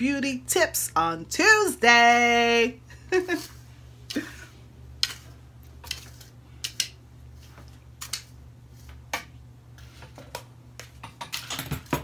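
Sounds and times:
tools clicking and knocking on table: 10.2 - 12.0.

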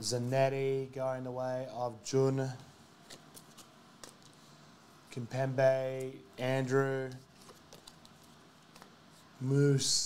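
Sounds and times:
trading cards clicking on a mat: 7.4 - 9.0.

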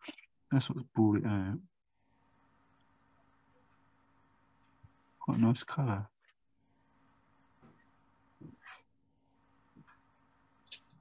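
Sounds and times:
faint steady hum: 0.1 - 11.0.

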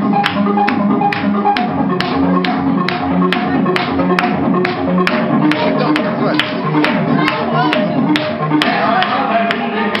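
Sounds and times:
upbeat dance music: 0.0 - 10.0
sharp taps on the beat: 0.2 - 10.0.

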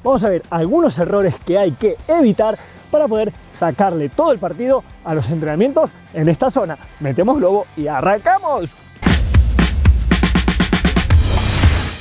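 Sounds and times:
theme music with drum kit: 0.0 - 12.0
fast run of drum hits: 9.0 - 11.9.

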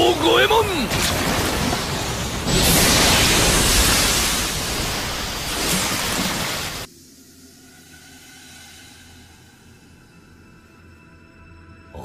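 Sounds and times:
fire blast roar: 0.8 - 5.7
faint sustained music tones: 6.8 - 12.0.

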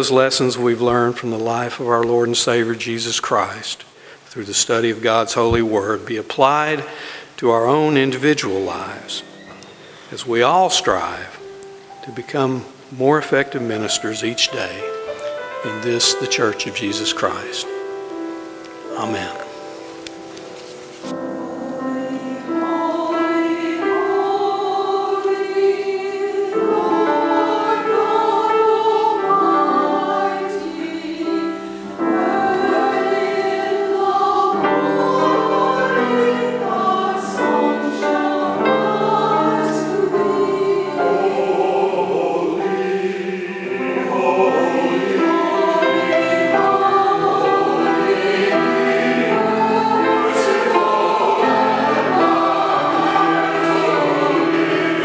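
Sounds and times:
church choir singing: 0.0 - 55.0.

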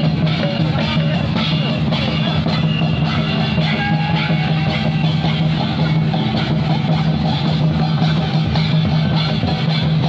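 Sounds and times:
hand drums beating: 0.0 - 10.0.

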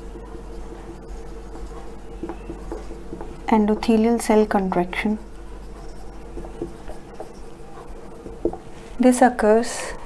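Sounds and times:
marker scratching on whiteboard: 0.0 - 9.0.

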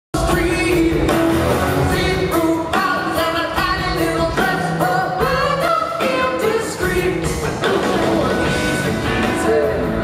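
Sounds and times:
live rock band with singing: 0.2 - 10.0.

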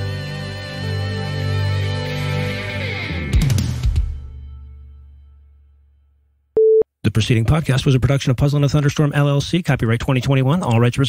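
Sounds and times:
rock music: 0.0 - 4.4
short electronic beep: 6.6 - 6.8.

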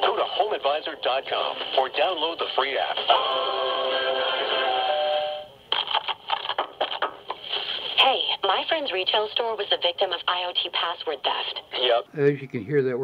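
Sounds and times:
music on am radio: 0.0 - 12.0
person talking on am radio: 9.4 - 12.7.

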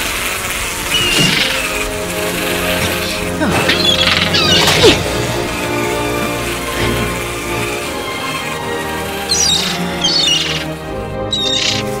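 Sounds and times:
film score music: 0.3 - 12.0
creature chittering squeals: 0.9 - 1.8, 2.8 - 5.0, 9.2 - 12.0
creature falling cry: 3.2 - 5.1.

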